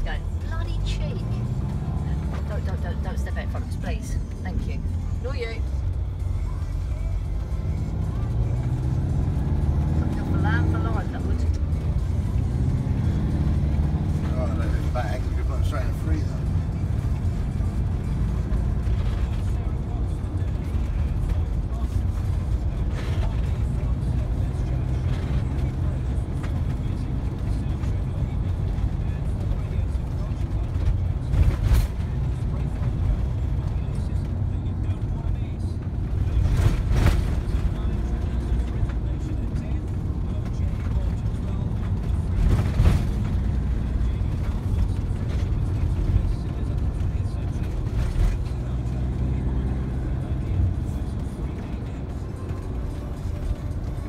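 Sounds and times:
car engine and tyre rumble: 0.0 - 54.0.

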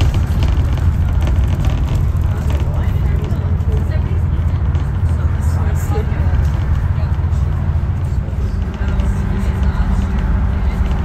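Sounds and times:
bus engine and tyre rumble: 0.0 - 11.0.

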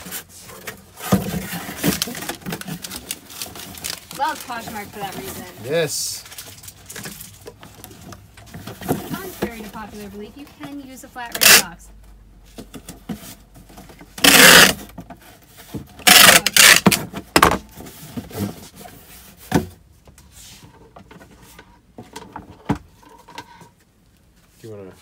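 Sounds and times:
packing tape screeching: 11.4 - 11.6, 14.2 - 14.9, 16.0 - 17.0.

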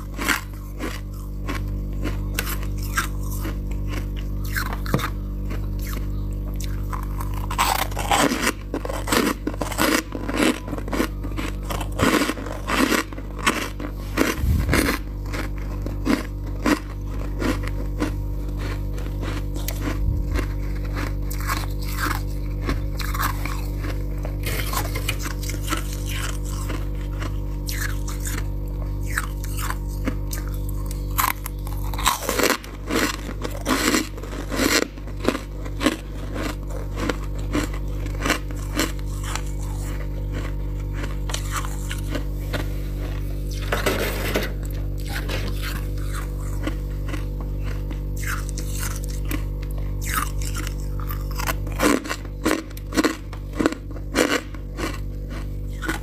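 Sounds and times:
frost being chewed crunching: 0.0 - 56.0
steady low hum: 0.0 - 56.0.

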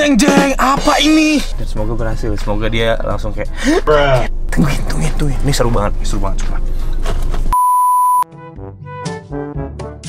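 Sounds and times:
light plucked background music: 0.0 - 4.4
man speaking: 0.0 - 6.7
electronic censor bleep: 7.5 - 8.3.

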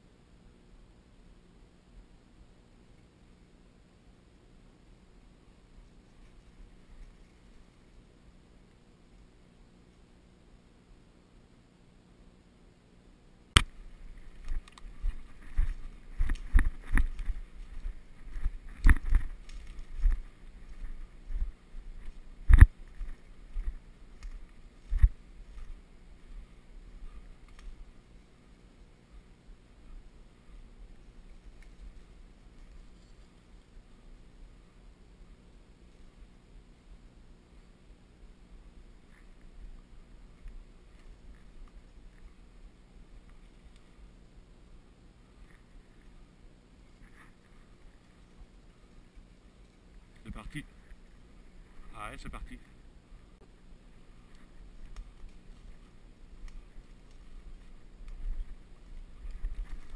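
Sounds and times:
twigs brushing: 5.8 - 8.1, 13.6 - 34.4, 38.9 - 44.4, 45.2 - 59.9
twig snapping: 13.6 - 20.8, 22.0 - 25.7, 27.4 - 27.8, 54.3 - 58.3
footsteps crunching dry leaves: 13.7 - 26.6.

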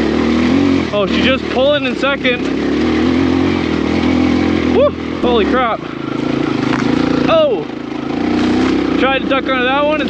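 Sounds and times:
dirt bike engine pulling under load: 5.2 - 9.8.

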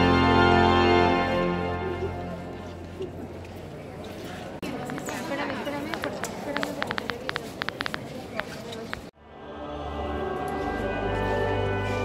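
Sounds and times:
sharp clicks: 4.8 - 9.1.

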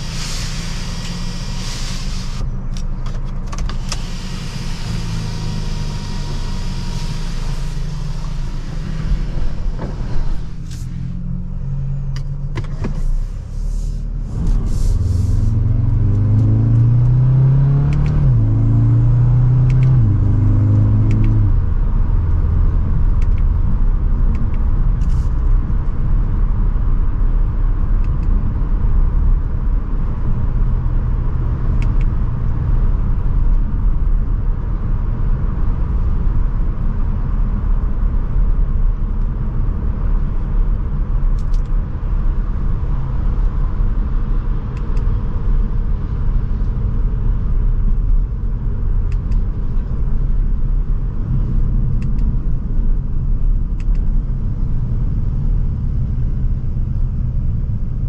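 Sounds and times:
road and tyre rumble: 0.0 - 58.0.

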